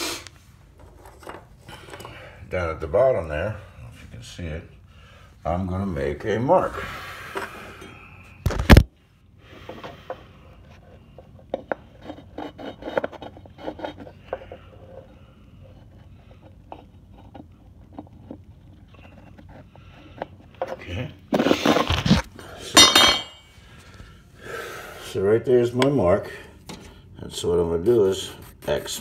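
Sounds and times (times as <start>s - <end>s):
small clicks and scrapes: 9.6s - 22.3s
tools clattering with metallic ringing: 22.7s - 23.5s.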